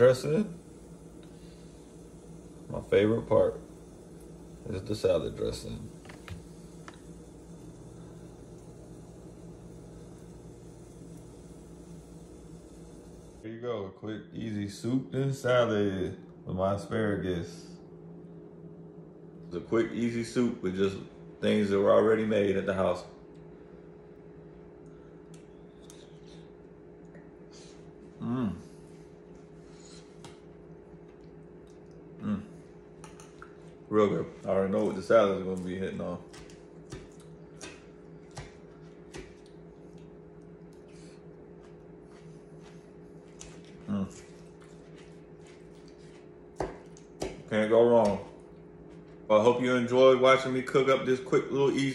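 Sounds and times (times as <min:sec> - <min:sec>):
kitchen appliance humming: 0:00.0 - 0:13.5
low room hum: 0:00.0 - 0:51.9.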